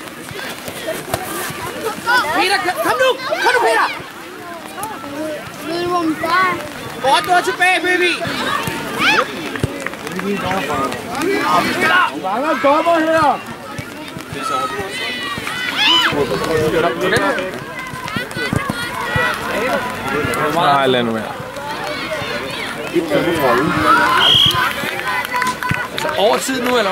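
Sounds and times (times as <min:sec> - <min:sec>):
people shouting outdoors: 0:00.2 - 0:26.9.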